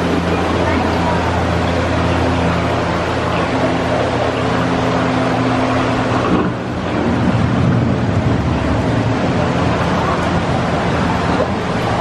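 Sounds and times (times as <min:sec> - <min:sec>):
low hum: 0:00.0 - 0:12.0
rushing water noise: 0:00.0 - 0:12.0.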